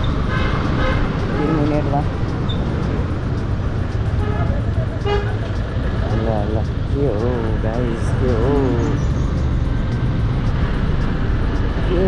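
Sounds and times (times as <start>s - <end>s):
traffic: 0.0s - 12.0s.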